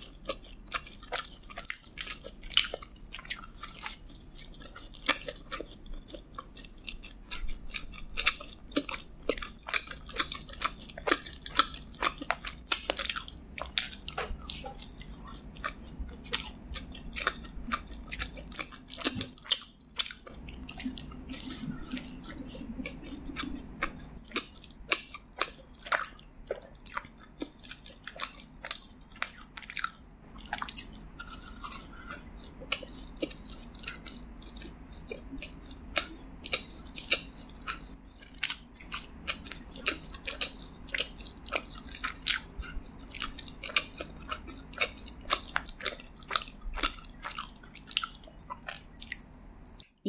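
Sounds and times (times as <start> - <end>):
chewing with crunches: 0.0 - 50.0.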